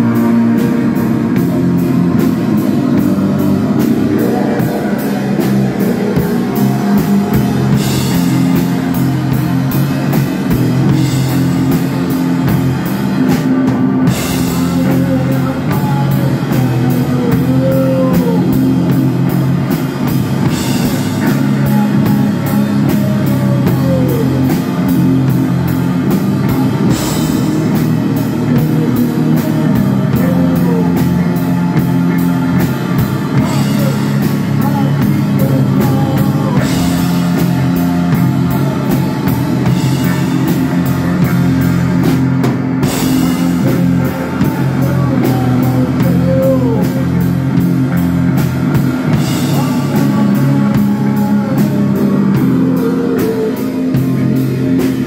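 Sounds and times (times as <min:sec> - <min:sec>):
distorted electric guitar riff: 0:00.0 - 0:55.0
drum kit: 0:00.0 - 0:55.0.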